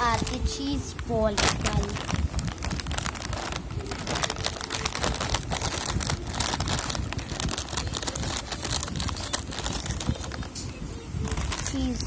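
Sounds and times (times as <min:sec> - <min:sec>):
plastic packet crinkling: 0:00.0 - 0:10.6, 0:11.2 - 0:12.0.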